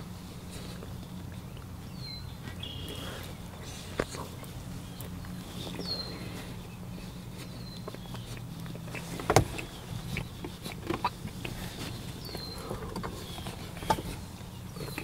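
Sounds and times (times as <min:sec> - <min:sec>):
man chewing with mouth clicks: 0:00.0 - 0:15.0
steady low hum: 0:00.0 - 0:15.0.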